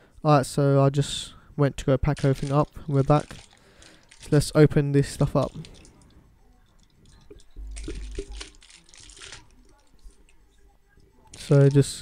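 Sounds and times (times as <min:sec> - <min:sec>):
plastic bag crinkling: 0:02.1 - 0:06.1, 0:06.7 - 0:10.3.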